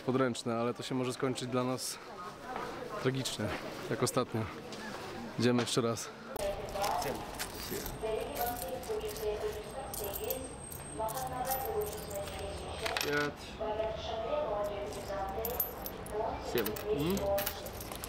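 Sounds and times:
voices talking in background: 0:00.0 - 0:18.0
coins clinking on wooden table: 0:06.8 - 0:13.3, 0:14.9 - 0:18.0.

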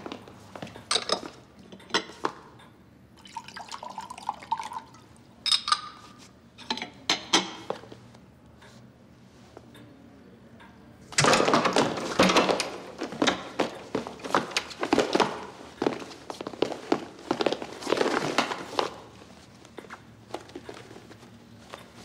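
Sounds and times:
footsteps on hard floor: 0:11.6 - 0:22.0.

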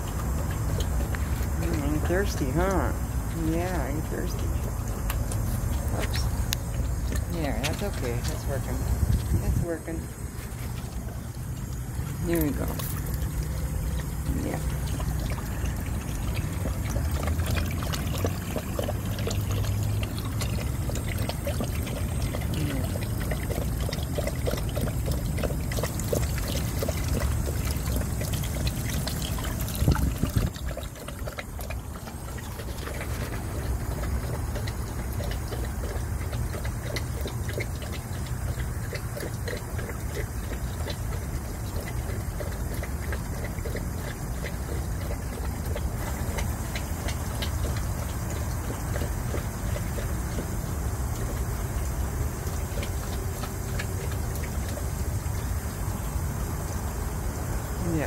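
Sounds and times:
dog lapping water: 0:00.0 - 0:58.0
water running from hose: 0:00.0 - 0:58.0.

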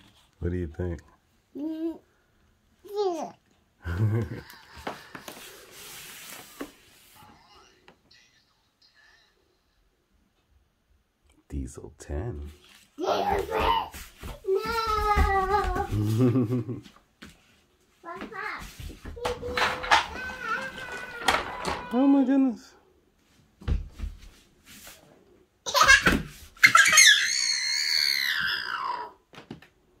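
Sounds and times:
child squealing: 0:26.6 - 0:29.2.

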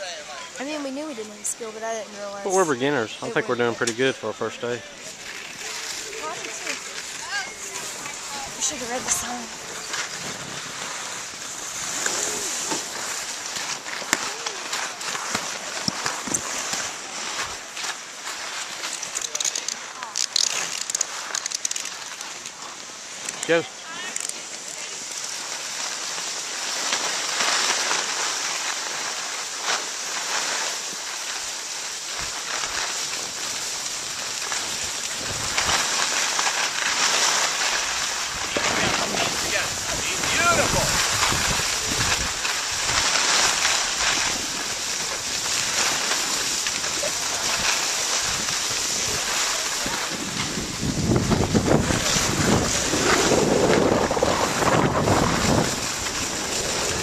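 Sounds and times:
skis scraping over snow: 0:00.0 - 0:57.0
wind buffeting microphone: 0:38.3 - 0:43.0, 0:47.4 - 0:57.0.

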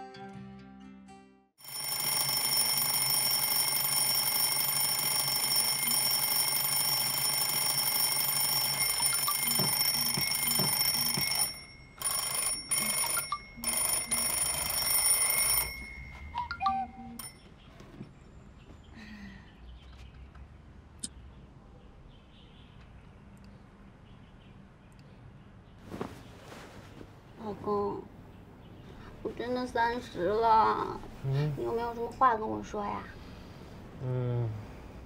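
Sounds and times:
mechanical alarm clock ringing: 0:01.6 - 0:17.6.

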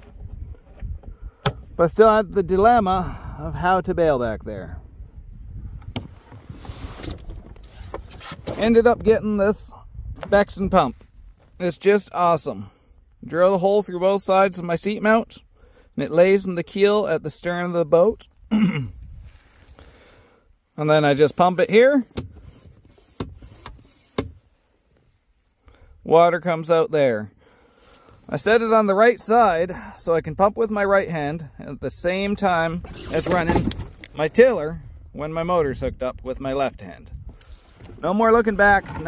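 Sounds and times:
wind rumbling on microphone: 0:00.0 - 0:11.5, 0:18.9 - 0:19.4, 0:31.8 - 0:39.0.

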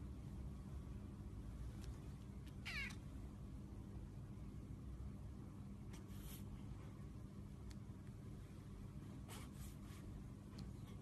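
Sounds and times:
cat meowing: 0:02.5 - 0:03.0.

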